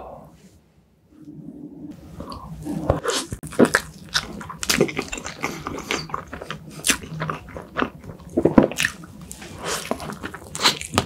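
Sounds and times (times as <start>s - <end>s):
chewing with mouth clicks: 2.2s - 11.0s.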